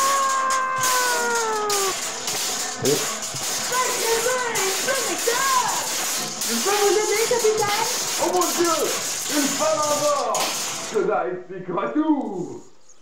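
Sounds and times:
person wailing cry: 0:00.0 - 0:02.0
steady hiss: 0:00.0 - 0:11.7.

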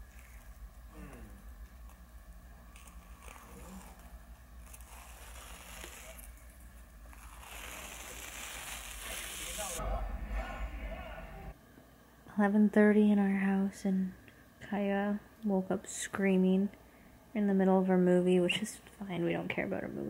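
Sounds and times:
face-mask film crinkling: 0:02.7 - 0:09.8.

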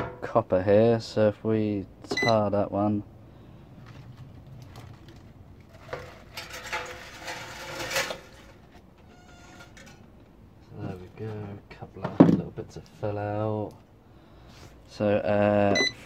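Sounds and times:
wire rustling and clinking in tin: 0:03.8 - 0:10.2.

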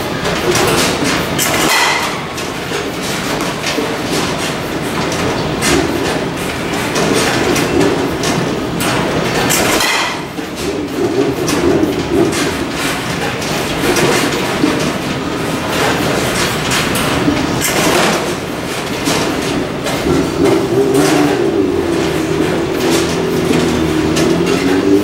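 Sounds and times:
batting cage machinery rumbling: 0:00.0 - 0:25.0.

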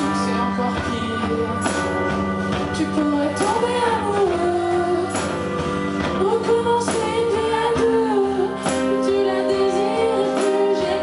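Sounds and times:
acoustic guitar: 0:00.0 - 0:11.0
band accompaniment: 0:00.0 - 0:11.0.

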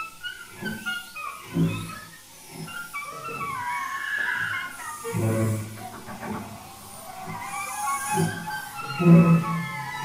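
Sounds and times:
experimental chamber ensemble: 0:00.2 - 0:10.0.

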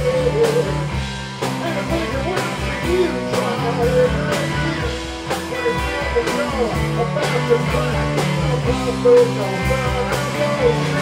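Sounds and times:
electric guitars: 0:00.0 - 0:11.0
steady drum beat: 0:00.0 - 0:11.0.

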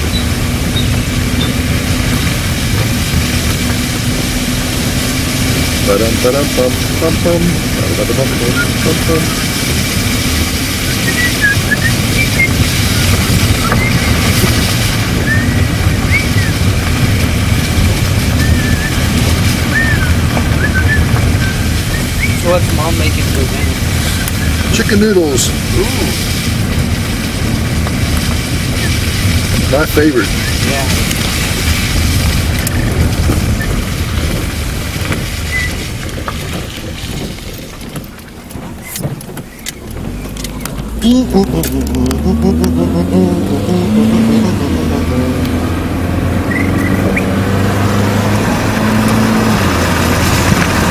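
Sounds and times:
vehicle engine rumbling: 0:00.0 - 0:50.9.

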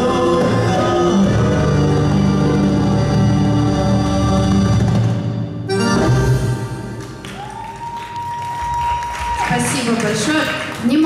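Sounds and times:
band playing keyboard and violin: 0:00.0 - 0:06.9.

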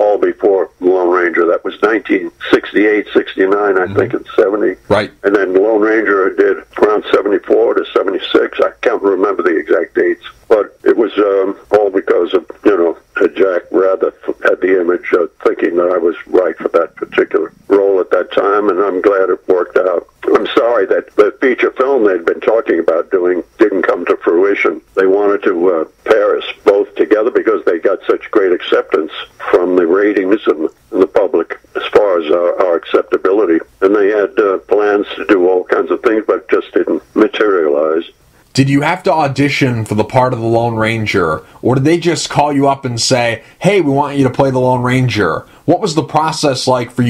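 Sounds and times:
person talking over telephone: 0:00.0 - 0:47.0.

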